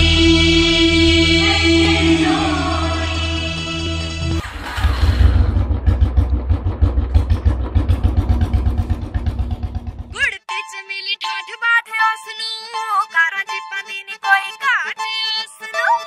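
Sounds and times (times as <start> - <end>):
tuneful music: 0.0 - 4.9, 10.2 - 16.0
motorcycle engine thumping: 4.4 - 10.2.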